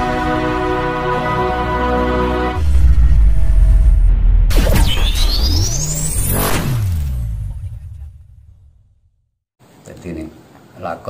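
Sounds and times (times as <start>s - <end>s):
low falling rumble: 2.6s - 4.5s.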